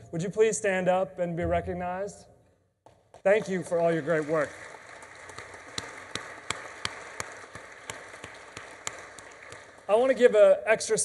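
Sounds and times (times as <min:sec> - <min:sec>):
sharp nearby claps: 0:02.8 - 0:09.9
audience applauding: 0:03.2 - 0:10.3.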